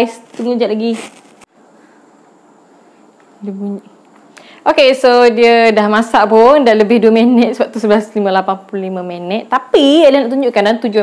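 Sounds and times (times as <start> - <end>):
woman's voice: 0.0 - 1.1, 3.4 - 3.9, 4.6 - 11.0
faint background hiss: 0.0 - 11.0.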